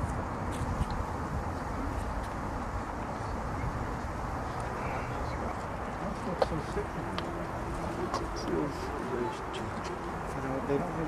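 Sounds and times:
wind rumble on microphone: 0:00.0 - 0:06.1
distant voices murmuring: 0:00.7 - 0:11.0.

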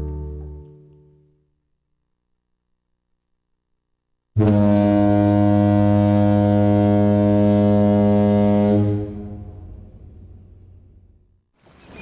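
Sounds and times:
ship's horn blast: 0:04.4 - 0:10.3.

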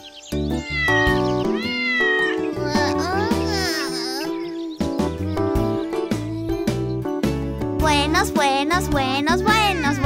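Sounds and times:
backing music: 0:00.0 - 0:10.0
cartoon kitten meowing: 0:00.6 - 0:04.6, 0:09.5 - 0:10.0.

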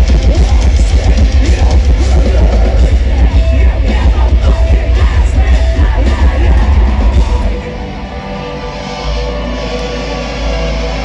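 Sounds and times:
distorted guitars: 0:00.0 - 0:11.0
heavy drums: 0:00.0 - 0:11.0
metalcore band playing live: 0:00.0 - 0:11.0
vocalist singing: 0:00.0 - 0:11.0.

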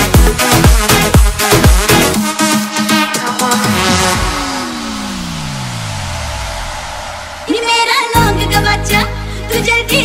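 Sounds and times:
electronic pop beat: 0:00.0 - 0:10.0
descending synth sweep: 0:02.3 - 0:08.7
wash of noise: 0:03.2 - 0:08.1.

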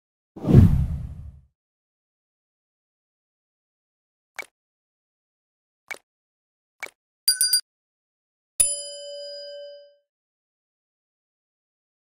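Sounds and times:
deep whoosh: 0:00.4 - 0:01.4.

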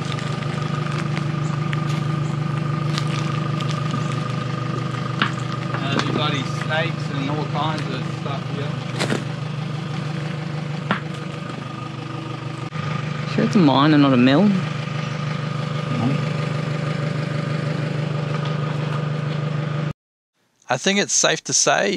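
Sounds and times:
engine-like drone idling: 0:00.0 - 0:19.9.

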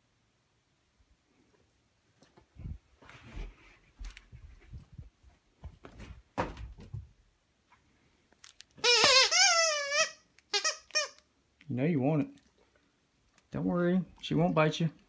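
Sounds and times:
footfalls on carpet: 0:03.0 - 0:07.1
squeaky toy squealing: 0:08.8 - 0:11.2.

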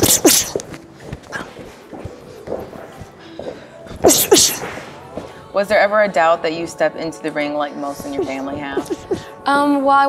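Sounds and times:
sharp hissing exhales with grunt: 0:00.0 - 0:00.6, 0:04.0 - 0:04.9.

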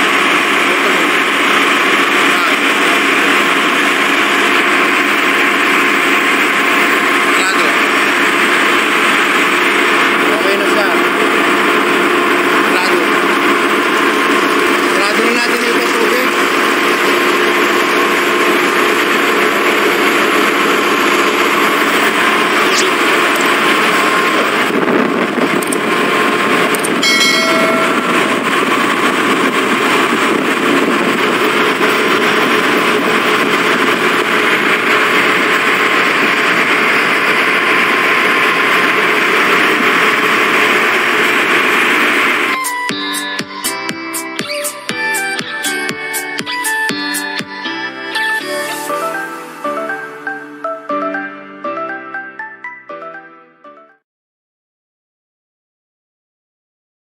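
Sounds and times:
engine room machinery noise: 0:00.0 - 0:52.8.

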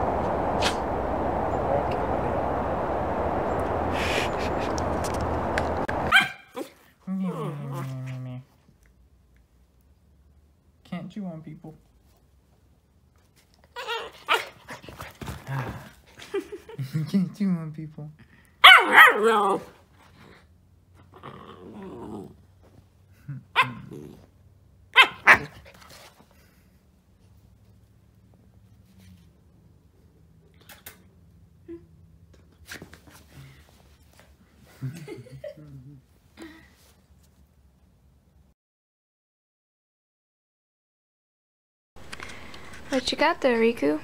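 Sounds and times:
outdoor rushing noise: 0:00.0 - 0:06.1
puppy yipping: 0:06.1 - 0:06.7, 0:18.6 - 0:19.4, 0:23.6 - 0:23.9, 0:25.0 - 0:25.6
puppy drawn-out cry: 0:13.8 - 0:14.7, 0:18.6 - 0:19.8, 0:23.5 - 0:24.2, 0:24.9 - 0:25.6
puppy growling: 0:21.0 - 0:22.5, 0:23.2 - 0:24.3.

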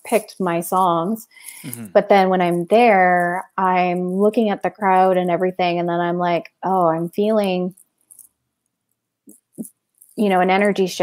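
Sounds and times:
short faint vocal sounds: 0:01.6 - 0:02.0.

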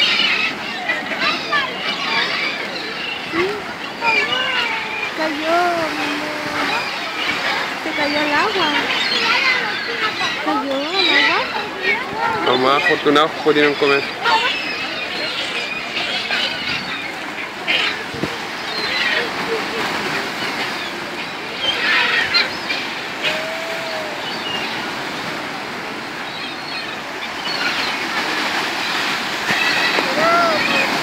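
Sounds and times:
bird calls: 0:00.0 - 0:31.0
water splashing: 0:00.0 - 0:31.0.

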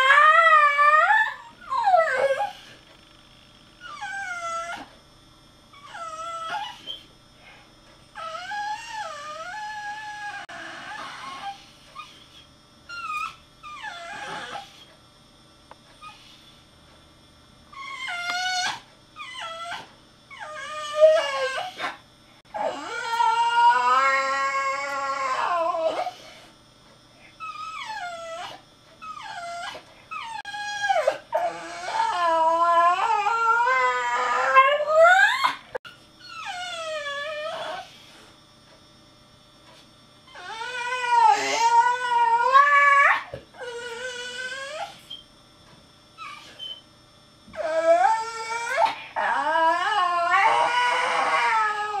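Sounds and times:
dog howling and whimpering: 0:00.0 - 0:02.8, 0:03.8 - 0:04.9, 0:05.7 - 0:07.1, 0:08.2 - 0:14.9, 0:17.7 - 0:26.5, 0:27.4 - 0:38.1, 0:40.3 - 0:45.2, 0:46.2 - 0:46.8, 0:47.5 - 0:52.0.

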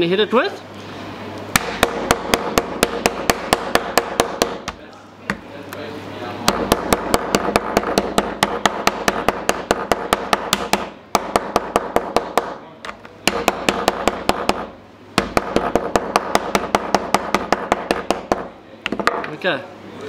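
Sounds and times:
metal hammer pounding squid: 0:01.5 - 0:04.8, 0:06.5 - 0:12.6, 0:13.2 - 0:19.2.

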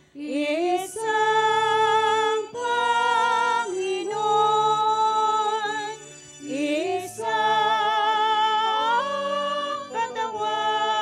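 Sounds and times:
high voice singing a hymn: 0:00.2 - 0:11.0.

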